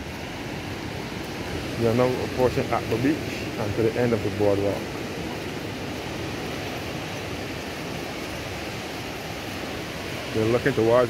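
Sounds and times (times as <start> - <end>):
surf washing onto a beach: 0.0 - 11.0.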